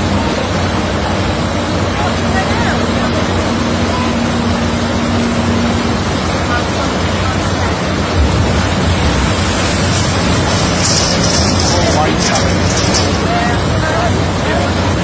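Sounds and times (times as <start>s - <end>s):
water rushing down channel: 0.0s - 15.0s
low hum: 2.5s - 14.1s.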